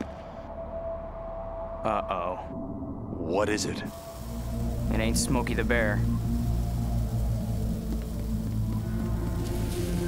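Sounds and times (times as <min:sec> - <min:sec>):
dark low score music: 0:00.0 - 0:10.0
faint hiss: 0:03.9 - 0:10.0.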